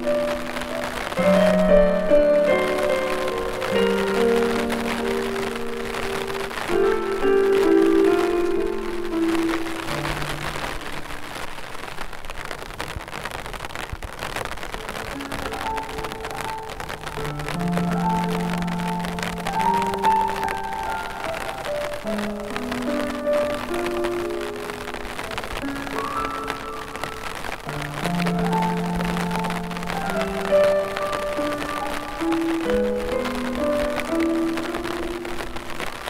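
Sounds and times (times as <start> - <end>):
piano music: 0.0 - 11.5, 14.8 - 36.0
steady rainfall: 0.0 - 36.0.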